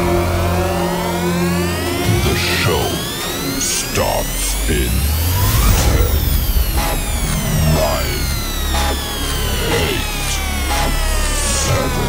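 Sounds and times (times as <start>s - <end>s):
high gliding electronic tones: 3.0s - 11.4s
deep steady rumble: 4.0s - 12.0s.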